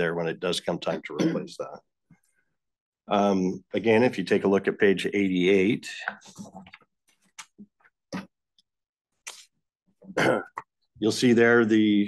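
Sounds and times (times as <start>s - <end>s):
person coughing: 0.9s - 1.6s, 10.1s - 10.6s.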